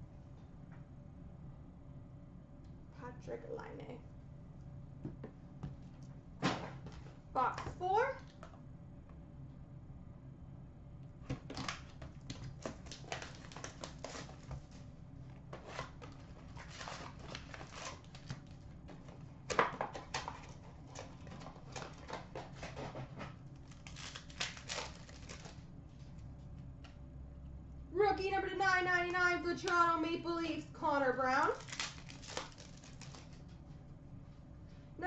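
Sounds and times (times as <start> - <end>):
cardboard packaging crinkling and tearing: 11.4 - 14.9, 15.6 - 18.6, 19.8 - 25.6, 31.5 - 33.5.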